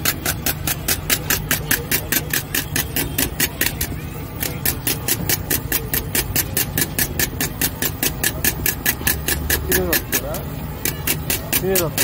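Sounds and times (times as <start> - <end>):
whisk swishing in steel bowl: 0.0 - 12.0.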